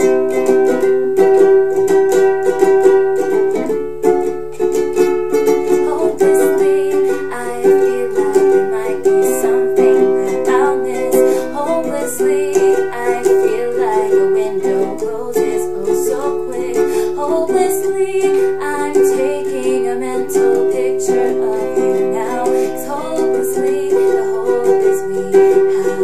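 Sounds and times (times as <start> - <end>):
ukulele strumming: 0.0 - 26.0
woman singing softly: 5.6 - 26.0.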